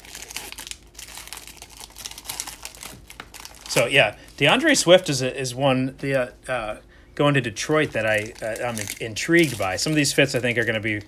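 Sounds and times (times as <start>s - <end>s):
foil wrappers crinkling: 0.0s - 5.2s, 7.5s - 11.0s.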